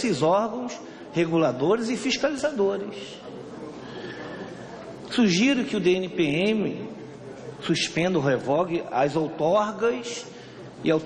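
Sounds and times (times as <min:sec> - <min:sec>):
room background noise: 0:00.0 - 0:11.0.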